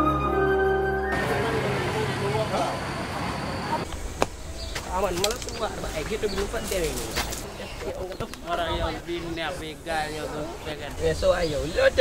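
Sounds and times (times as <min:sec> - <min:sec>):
car traffic: 0:01.1 - 0:08.2
crowd talking: 0:01.1 - 0:12.0.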